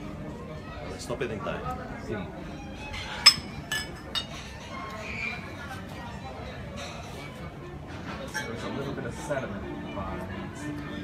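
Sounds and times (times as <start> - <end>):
glassware clinking: 3.0 - 4.7.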